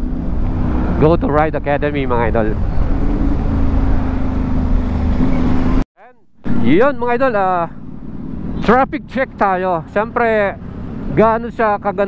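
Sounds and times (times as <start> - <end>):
scooter engine drone: 0.0 - 5.8, 6.4 - 11.2
wind and road noise: 0.0 - 5.8, 6.4 - 12.0.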